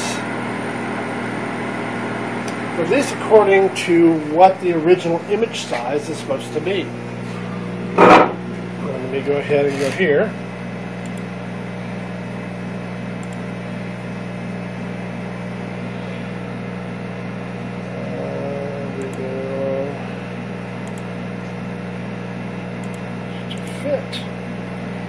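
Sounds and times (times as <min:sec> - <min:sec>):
electrical hum of equipment: 0:00.0 - 0:25.0.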